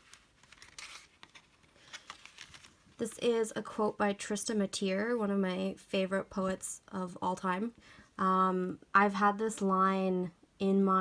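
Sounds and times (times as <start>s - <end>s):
paper notebook rustling and clicks: 0.0s - 2.8s
page turning: 0.0s - 3.0s.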